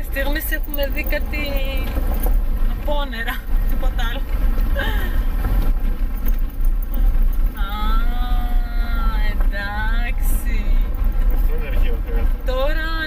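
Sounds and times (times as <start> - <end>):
voices: 0.0 - 2.0, 7.6 - 13.0
road noise: 0.0 - 13.0.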